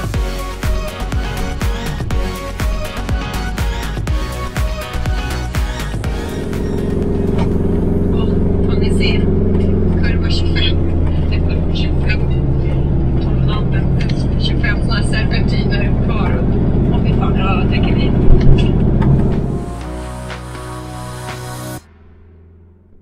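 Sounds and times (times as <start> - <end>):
van engine running: 0.0 - 23.0.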